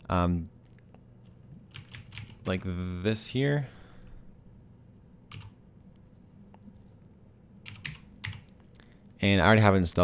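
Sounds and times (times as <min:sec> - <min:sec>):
computer keyboard typing: 0:01.7 - 0:02.5, 0:05.3 - 0:05.6, 0:07.6 - 0:08.6.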